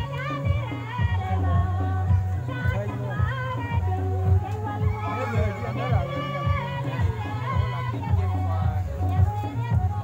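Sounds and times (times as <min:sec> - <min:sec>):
group singing gospel song: 0:00.0 - 0:10.0.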